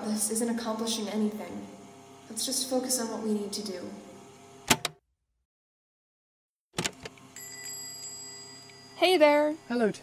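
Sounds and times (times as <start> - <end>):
door click: 4.7 - 5.0, 6.8 - 7.2
shop door bell ringing: 7.4 - 9.4.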